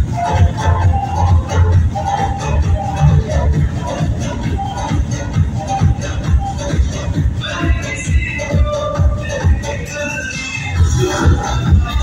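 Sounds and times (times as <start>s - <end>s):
dance music over pa system: 0.0s - 12.0s.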